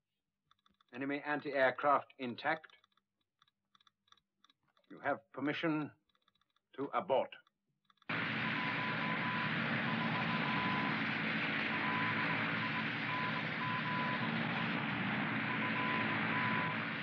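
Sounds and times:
aircraft engines droning: 8.1 - 17.0.

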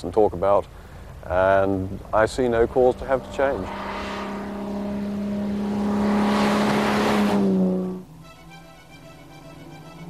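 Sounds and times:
car engine passing: 1.1 - 10.0.

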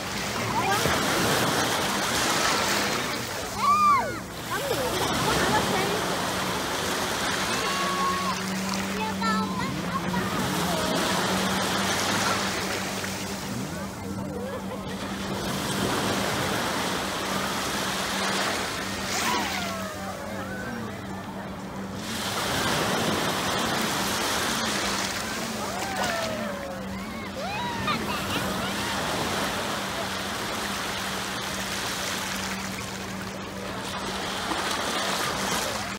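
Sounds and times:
small waves breaking on shore: 0.0 - 35.9
surf washing up beach: 0.0 - 35.9.

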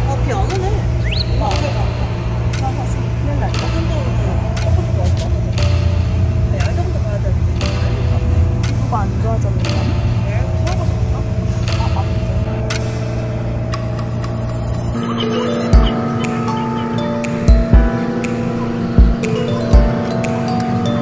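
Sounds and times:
light ticks: 2.5 - 5.9, 8.6 - 10.0.

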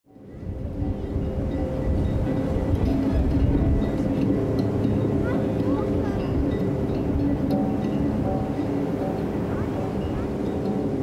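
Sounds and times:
wind and surf rumble: 0.1 - 11.0
faint distant voices: 0.2 - 11.0.

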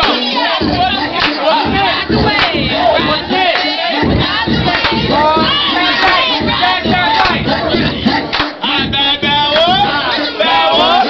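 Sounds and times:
crowd shouting and cheering: 0.0 - 11.0.

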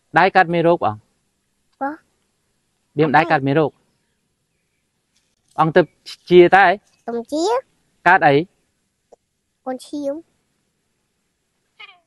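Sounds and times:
young child's voice: 3.0 - 3.4, 7.1 - 7.6, 9.7 - 10.2.

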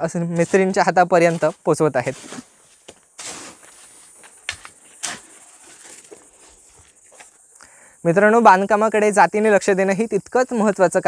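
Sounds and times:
soft knocks of bricks and stones: 2.2 - 7.3.

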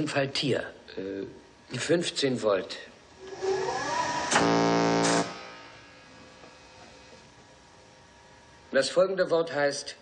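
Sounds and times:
steady electric buzz: 0.0 - 9.5.

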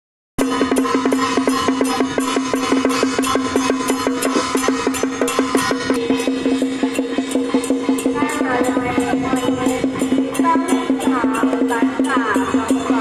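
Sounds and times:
drum and cymbal strikes: 0.4 - 13.0.

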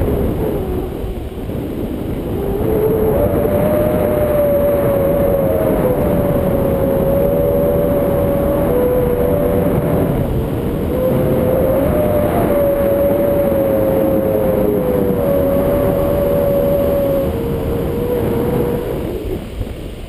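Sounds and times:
wind roaring over camera: 0.0 - 20.0.

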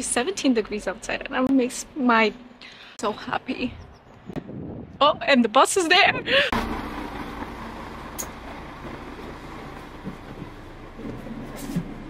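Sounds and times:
bus engine idling: 6.2 - 12.0.

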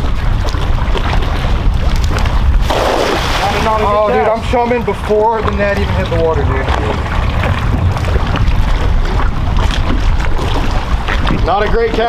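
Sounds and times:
choppy water: 0.0 - 12.0
wind buffeting microphone: 0.0 - 12.0.

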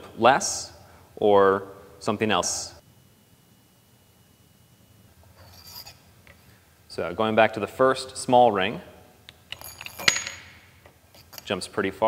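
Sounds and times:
metal ring clinking: 5.4 - 6.1, 9.5 - 11.5.

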